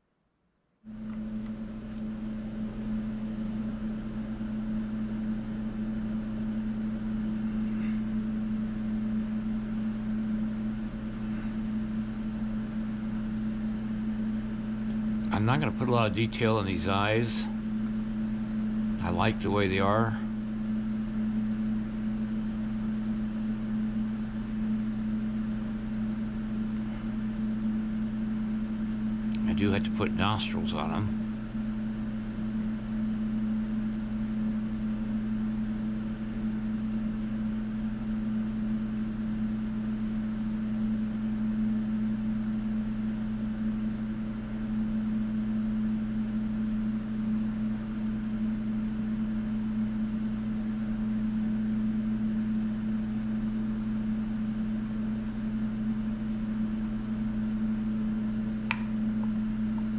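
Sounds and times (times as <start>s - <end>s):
low machine hum: 0.0s - 59.9s.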